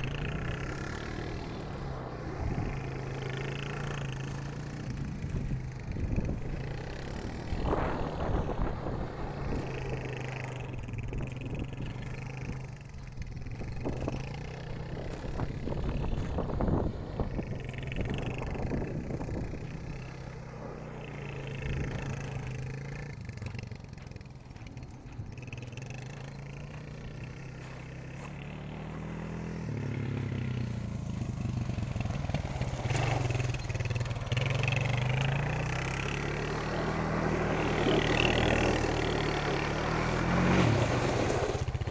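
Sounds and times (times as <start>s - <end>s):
quad bike engine revving: 0.0s - 41.9s.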